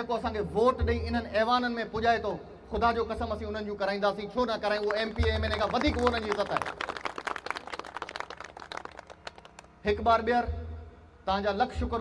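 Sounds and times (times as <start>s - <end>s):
man speaking over loudspeaker: 0.0s - 6.9s, 11.3s - 12.0s
group clapping: 4.6s - 9.8s.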